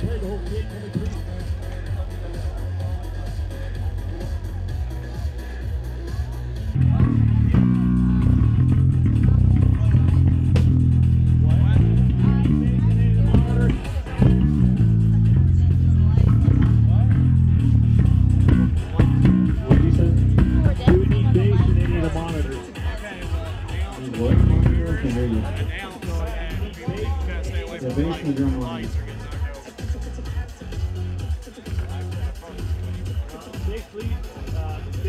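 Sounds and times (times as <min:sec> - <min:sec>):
electric bass guitar notes: 0:06.7 - 0:22.4, 0:24.2 - 0:25.5.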